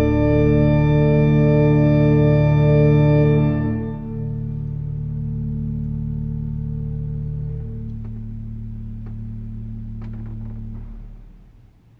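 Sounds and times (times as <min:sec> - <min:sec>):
church organ chord: 0:00.0 - 0:11.6.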